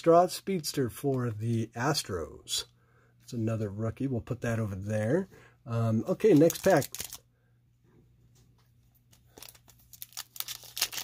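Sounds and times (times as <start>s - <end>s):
foil wrapper tearing and crinkling: 6.2s - 7.2s, 9.3s - 11.0s.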